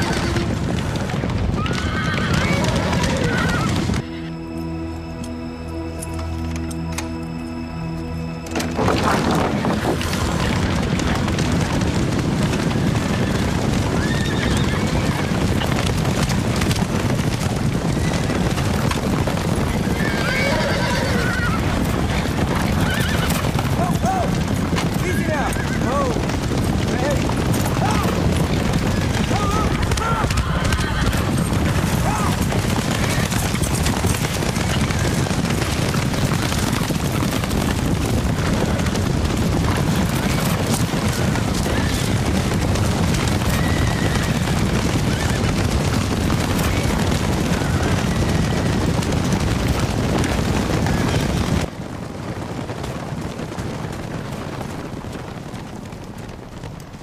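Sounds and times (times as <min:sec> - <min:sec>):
horses neighing: 0:00.0 - 0:04.6, 0:08.5 - 0:51.7
galloping hooves rumbling: 0:00.0 - 0:57.0.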